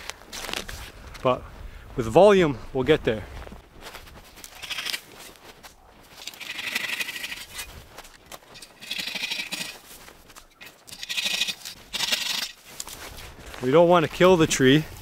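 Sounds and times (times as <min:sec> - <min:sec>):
hand saw rasping through branch: 0:04.4 - 0:05.2, 0:06.2 - 0:07.8, 0:08.4 - 0:09.9, 0:10.6 - 0:12.6.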